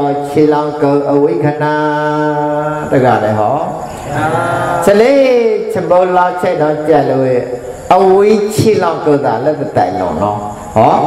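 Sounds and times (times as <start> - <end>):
man chanting in held notes: 0.0 - 11.0.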